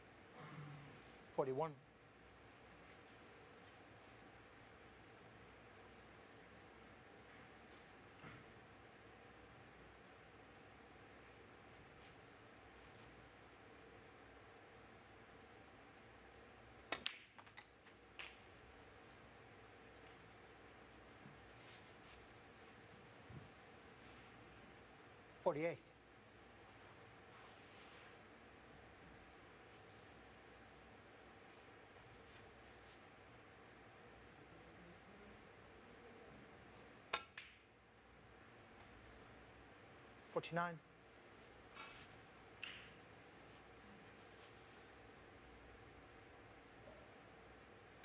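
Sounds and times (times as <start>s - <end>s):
balls colliding click: 16.9s - 18.5s, 37.1s - 37.7s
snooker ball click: 37.1s - 37.6s.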